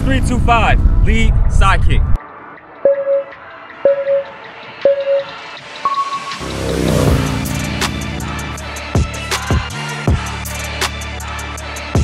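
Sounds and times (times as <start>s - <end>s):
timer short beeps: 2.9s - 6.4s
higher-pitched timer beep: 2.9s - 6.5s.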